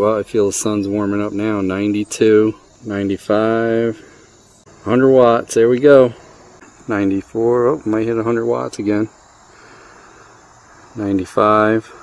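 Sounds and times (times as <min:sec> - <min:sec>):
faint background hiss: 0:00.0 - 0:12.0
high-pitched insect chorus: 0:00.0 - 0:12.0.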